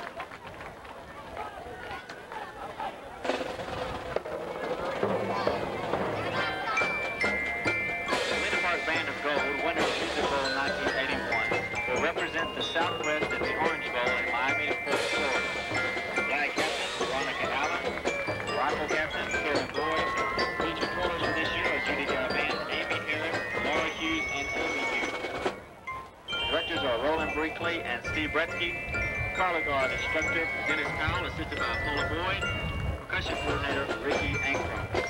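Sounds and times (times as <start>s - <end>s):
spectators' voices: 0.0s - 25.7s
marching band playing: 3.2s - 35.0s.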